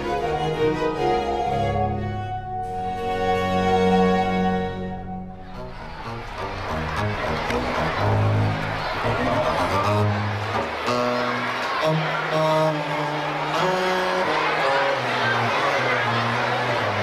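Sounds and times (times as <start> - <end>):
baroque string orchestra playing: 0.0 - 17.0.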